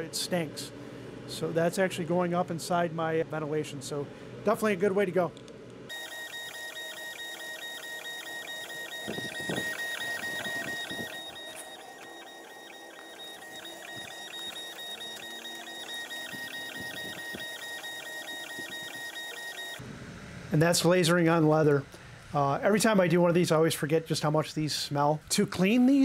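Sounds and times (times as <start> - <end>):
laser engraver motors whining: 5.9 - 19.8.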